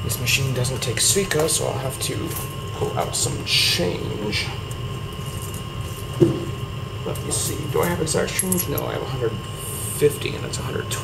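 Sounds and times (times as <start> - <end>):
vending machine humming: 0.0 - 11.0.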